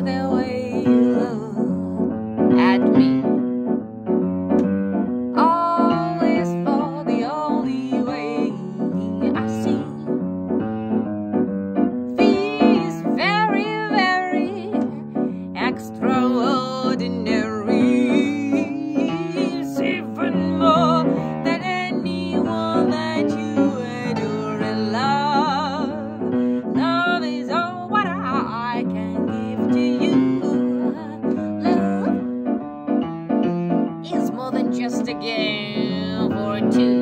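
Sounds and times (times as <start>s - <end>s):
wordless vocals with vibrato: 0.0s - 3.3s, 5.4s - 10.1s, 12.2s - 32.3s, 34.1s - 37.0s
jazz piano solo: 0.0s - 37.0s.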